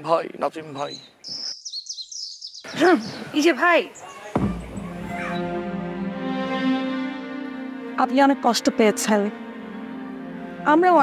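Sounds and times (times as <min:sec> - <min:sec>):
birds chirping: 0:00.0 - 0:06.1.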